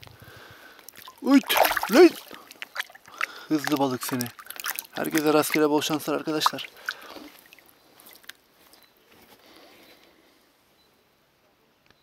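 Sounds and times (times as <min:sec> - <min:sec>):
fish splashing in water: 0:00.8 - 0:08.3
person exclaiming: 0:01.2 - 0:02.3.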